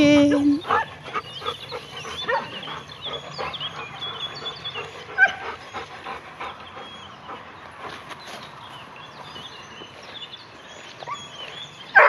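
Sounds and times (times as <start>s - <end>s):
dogs yipping and whining: 0.0s - 8.0s, 10.7s - 12.0s.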